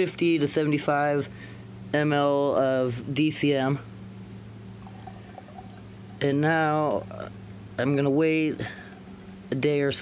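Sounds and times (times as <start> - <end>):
low steady hum: 0.0 - 10.0
liquid pouring into glass jar: 4.8 - 6.2.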